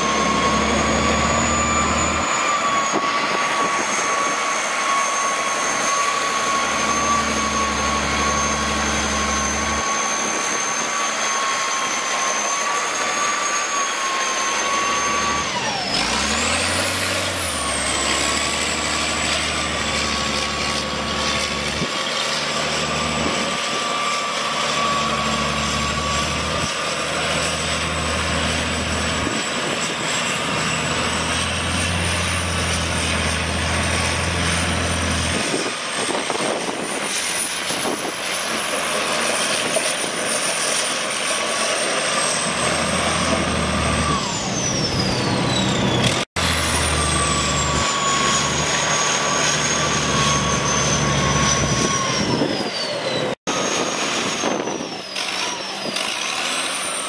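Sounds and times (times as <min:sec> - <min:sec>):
thin high whine: 0:00.0 - 0:55.8
diesel engine running: 0:00.0 - 0:57.0.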